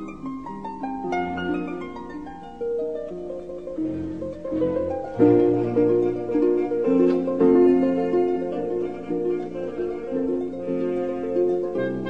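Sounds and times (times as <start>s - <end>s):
harp playing classical music: 0.0s - 12.0s.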